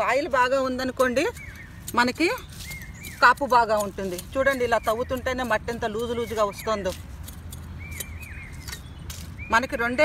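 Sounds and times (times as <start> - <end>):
woman speaking: 0.0 - 2.5, 3.2 - 7.0
hand hoe scraping soil: 1.0 - 9.3.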